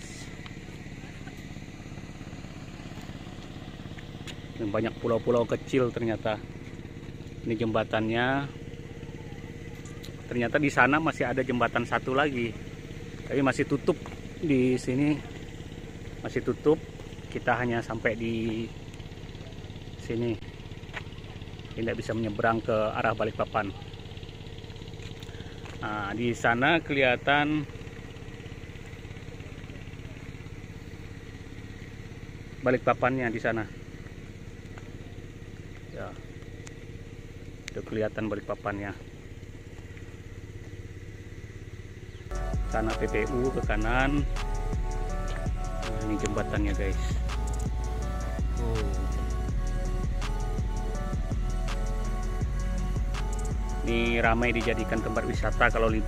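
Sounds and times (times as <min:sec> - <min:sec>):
small engine running: 0:00.0 - 0:56.0.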